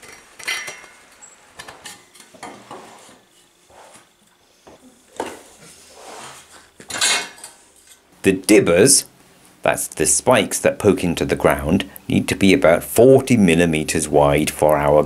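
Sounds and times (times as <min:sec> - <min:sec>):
metallic clanks and knocks: 0:00.0 - 0:02.6.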